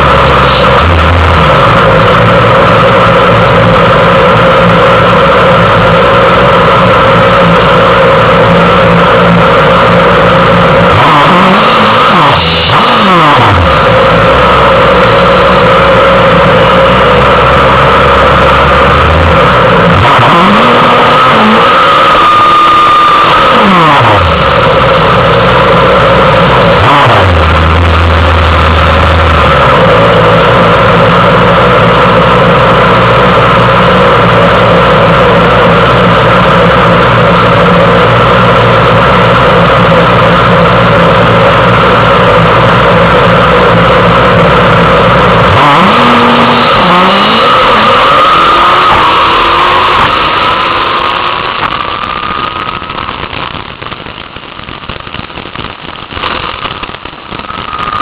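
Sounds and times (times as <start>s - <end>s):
motorcycle engine idling and revving: 0.0s - 58.0s.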